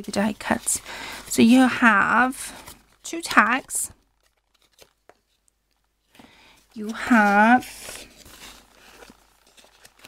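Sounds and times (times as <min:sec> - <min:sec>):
paper handling ticks: 0:00.0 - 0:10.0.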